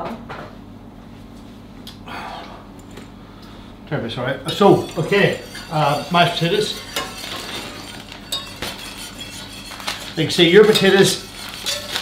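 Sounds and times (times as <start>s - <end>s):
whisk clinking against saucepan: 4.5s - 12.0s.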